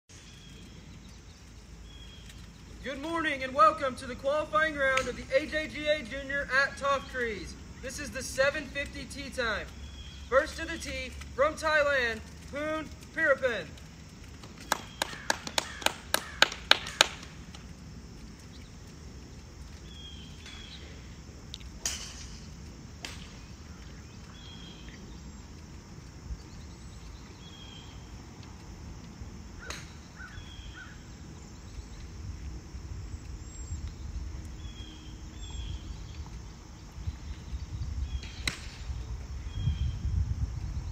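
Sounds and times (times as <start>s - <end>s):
wind rumble: 0.1s - 40.9s
crow cawing: 14.9s - 17.2s
golf club striking ball: 38.2s - 38.9s.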